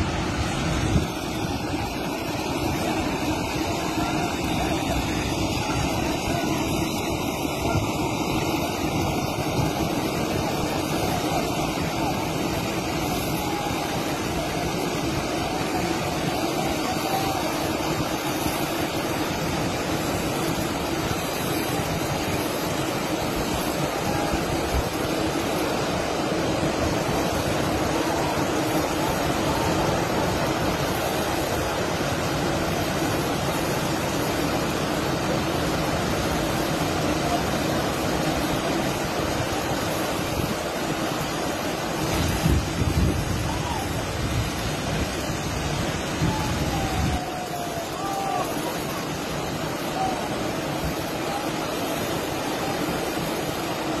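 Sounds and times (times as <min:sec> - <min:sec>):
landslide rushing rumble: 0:00.0 - 0:54.0.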